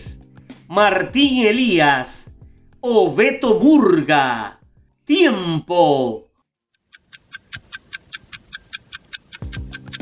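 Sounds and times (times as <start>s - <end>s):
countdown timer ticking: 6.8s - 10.0s.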